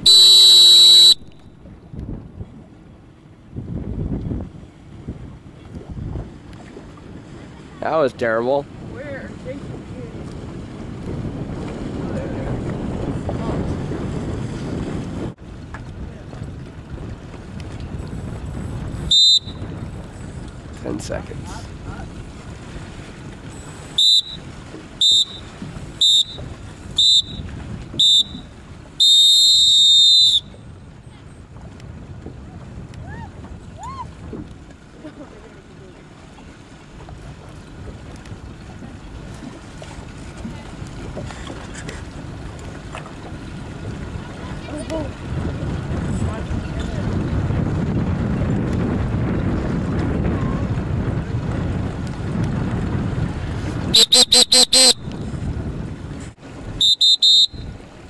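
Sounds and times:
water noise: 0:00.0 - 0:58.0
wind: 0:00.0 - 0:58.0
long beep: 0:54.0 - 0:55.0
short high beeps: 0:54.0 - 0:55.1.

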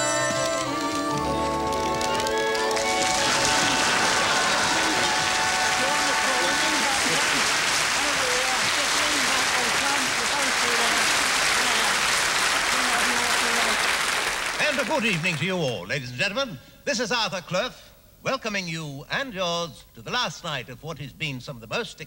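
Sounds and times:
audience voices: 0:00.0 - 0:15.4
audience applauding: 0:00.0 - 0:15.9.

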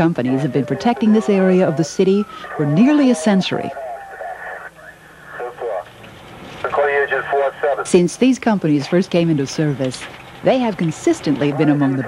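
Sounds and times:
voice over two-way radio: 0:00.2 - 0:05.9, 0:06.6 - 0:08.1.

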